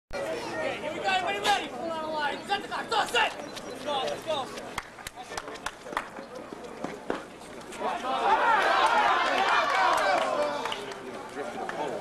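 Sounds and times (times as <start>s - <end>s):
crowd chatter: 0.2s - 12.0s.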